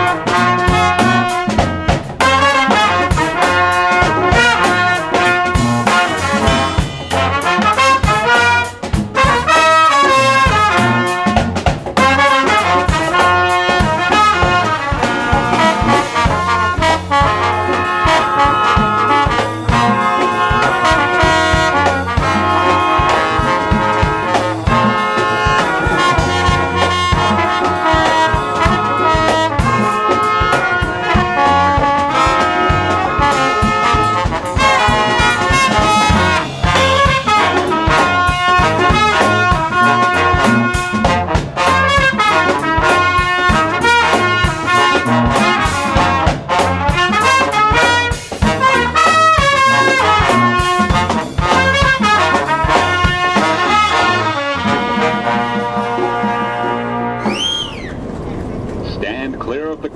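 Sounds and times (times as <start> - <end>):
brass ensemble playing: 0.0 - 59.9
drum kit beat: 0.0 - 59.9.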